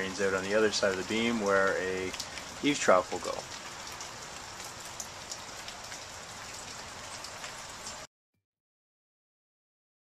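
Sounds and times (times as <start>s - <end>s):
light rain: 0.0s - 8.1s
water dripping: 0.0s - 8.1s.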